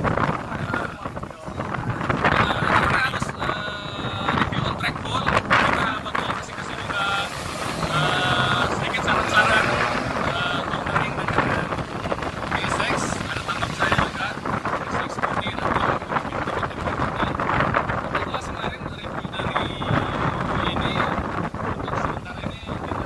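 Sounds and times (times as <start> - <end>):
wind buffeting microphone: 0.0 - 23.0
man talking: 0.4 - 23.0.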